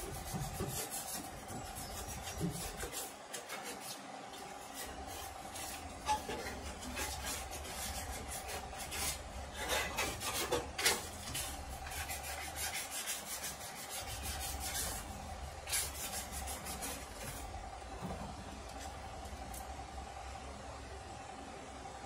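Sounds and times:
sandpaper rubbing on metal: 0:00.0 - 0:17.6
steady low hum: 0:00.0 - 0:22.0.

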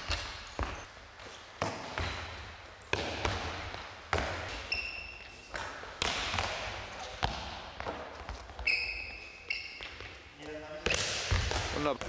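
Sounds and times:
sports hall noise: 0:00.0 - 0:12.0
ball thudding with echo: 0:01.6 - 0:04.6, 0:05.5 - 0:08.5, 0:10.8 - 0:12.0.

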